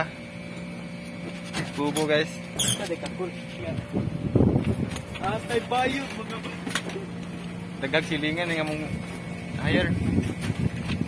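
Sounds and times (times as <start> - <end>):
air conditioner units humming: 0.0 - 11.0.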